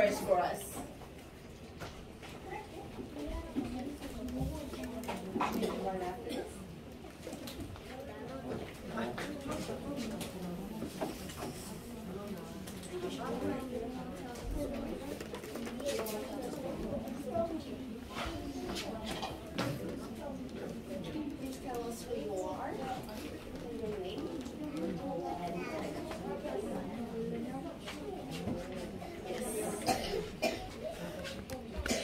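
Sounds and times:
background chatter: 0.0s - 32.0s
people talking quietly: 0.0s - 32.0s.

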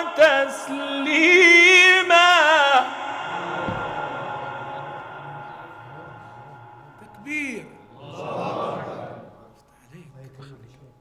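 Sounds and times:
man's melodic recitation reverberating: 0.0s - 8.3s.

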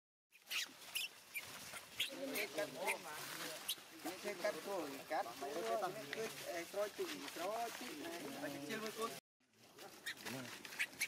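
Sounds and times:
dry leaves rustling and crackling: 0.4s - 11.0s.

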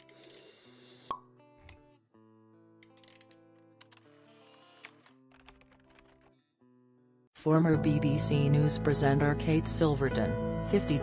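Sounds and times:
soft background music: 7.4s - 11.0s.

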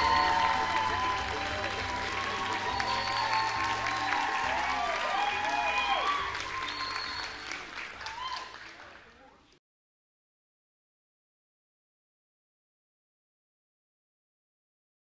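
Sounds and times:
music: 0.0s - 9.0s
audience applauding: 0.0s - 9.5s.

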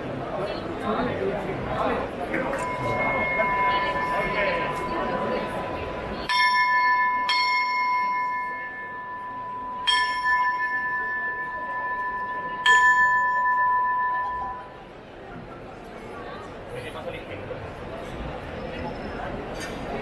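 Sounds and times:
hand bell ringing: 2.6s - 14.7s.

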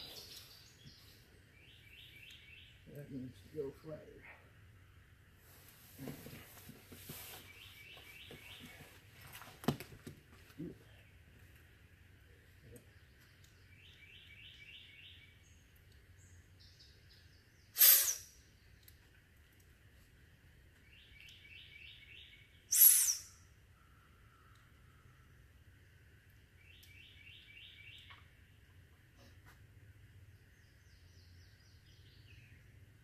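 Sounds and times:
songbird singing: 0.0s - 9.2s, 10.4s - 33.0s.

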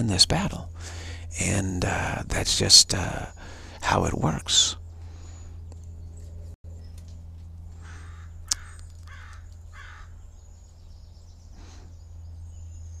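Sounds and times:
low hum: 0.0s - 13.0s
crow cawing: 7.8s - 10.2s.

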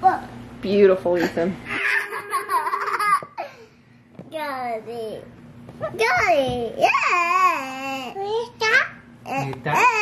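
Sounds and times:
young child laughing: 1.7s - 3.6s.

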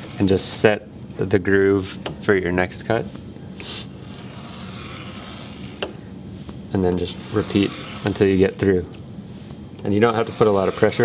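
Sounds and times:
knife scoring cardboard: 3.6s - 6.0s, 6.9s - 8.7s, 10.0s - 11.0s.

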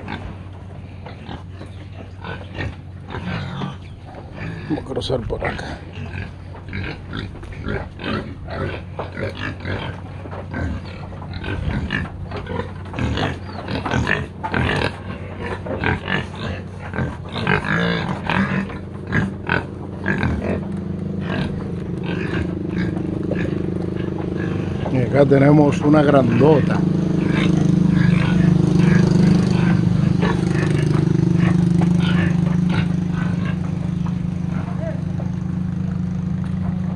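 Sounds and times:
pigs grunting and snuffling: 0.0s - 36.9s
steady low hum: 0.0s - 36.9s.

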